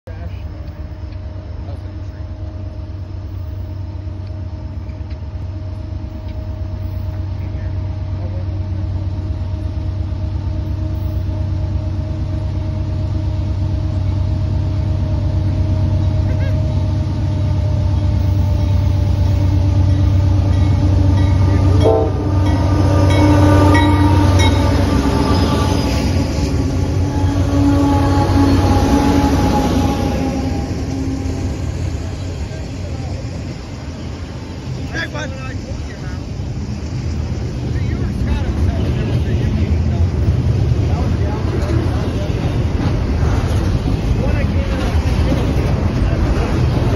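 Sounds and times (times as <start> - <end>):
diesel locomotive rumble: 0.0 - 46.9
freight cars rolling past: 13.2 - 46.9
train horn: 20.7 - 31.8.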